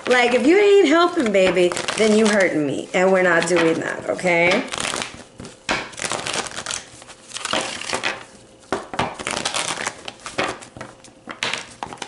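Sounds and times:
cards being shuffled: 3.3 - 12.0.

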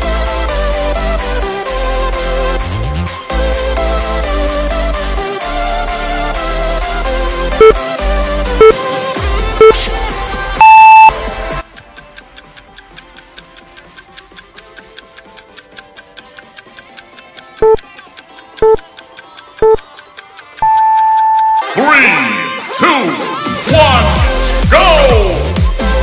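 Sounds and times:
workout timer beeps: 7.6 - 7.8, 10.6 - 11.2, 17.6 - 17.9, 18.6 - 18.9, 19.6 - 19.9, 20.6 - 21.7
rapid steady ticking: 11.0 - 21.6
dance music: 20.7 - 26.0.

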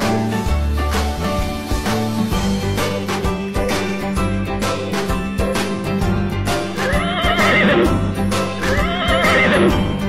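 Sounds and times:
bouncy jingle music: 0.0 - 10.0
horse whinnying: 6.7 - 8.0, 8.6 - 9.9.

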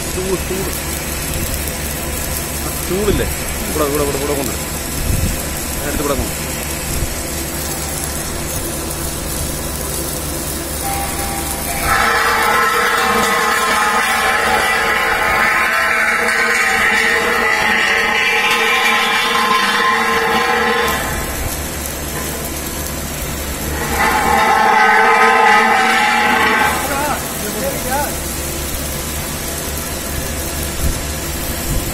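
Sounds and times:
factory whine of held tones: 0.0 - 31.9
low machine hum: 0.0 - 31.9.

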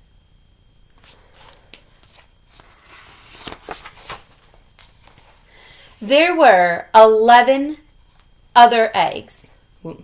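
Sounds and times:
paper pages turning: 1.0 - 5.4.

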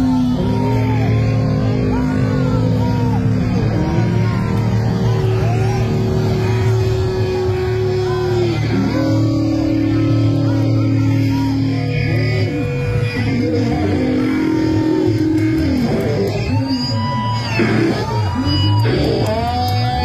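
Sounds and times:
electric guitar lead with bends: 0.0 - 20.0
rock band playing live: 12.0 - 20.0.

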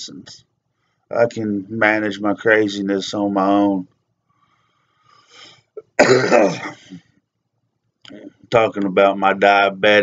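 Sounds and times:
man clearing his throat: 5.8 - 7.0.

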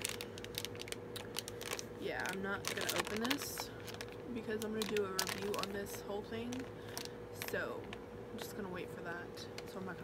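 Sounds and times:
plastic pouch crinkling and clicking: 0.0 - 8.0
faint steady hum: 0.0 - 10.0.

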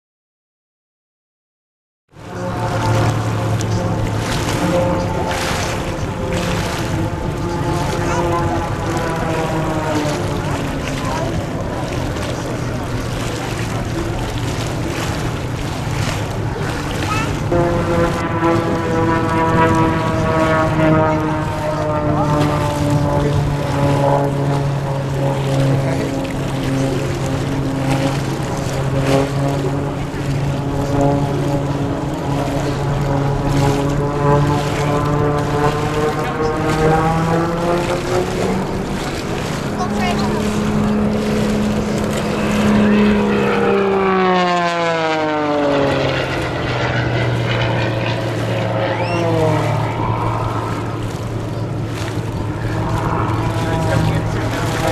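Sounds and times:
plane engine and propeller droning: 2.1 - 54.9.

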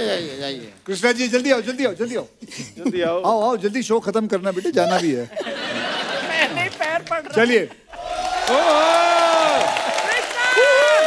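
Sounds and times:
audience cheering and clapping: 7.9 - 11.0
long whooping shout: 8.0 - 11.0.

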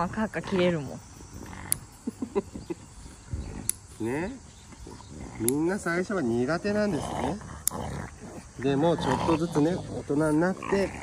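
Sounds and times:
dog grumbling and growling: 0.0 - 11.0
nail clippers click: 3.6 - 3.8, 5.4 - 5.6.

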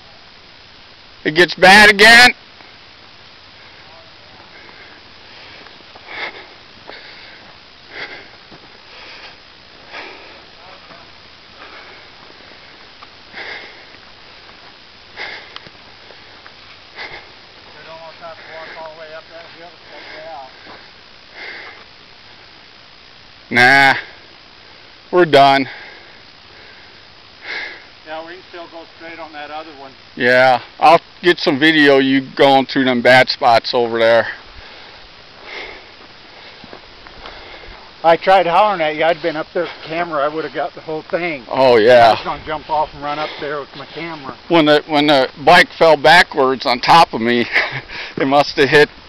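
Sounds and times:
faint background hiss: 0.0 - 49.0
person sniffing and breathing: 4.5 - 10.5, 34.4 - 38.0.

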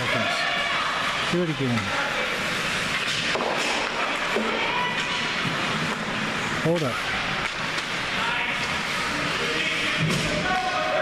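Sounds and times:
continuous arena hum: 0.0 - 11.0.

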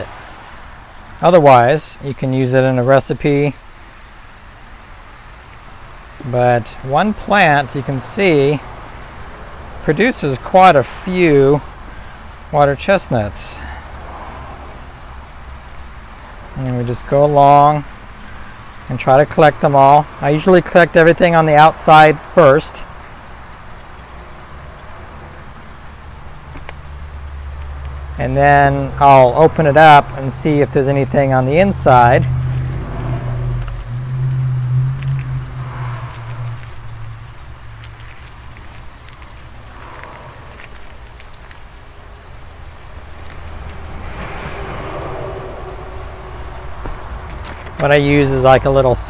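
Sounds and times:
soil and roots rustling: 0.0 - 49.0
low outdoor rumble: 22.4 - 49.0.

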